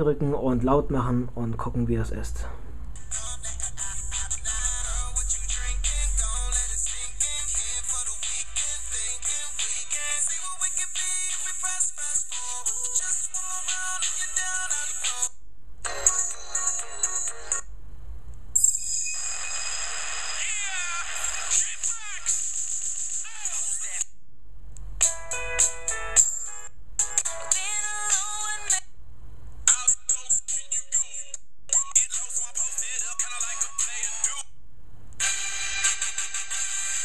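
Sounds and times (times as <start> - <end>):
songs with vocals on small loudspeaker: 3.0 - 15.3, 27.0 - 28.8, 29.7 - 34.5.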